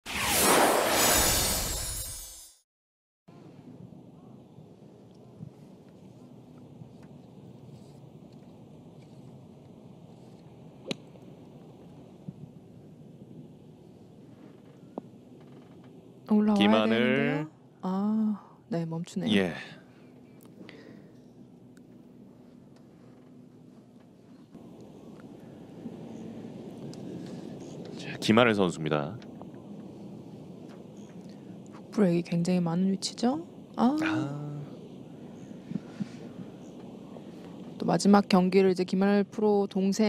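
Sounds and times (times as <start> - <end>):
low rumble of wind: 3.3 - 40.0
open-air background hiss: 3.3 - 40.0.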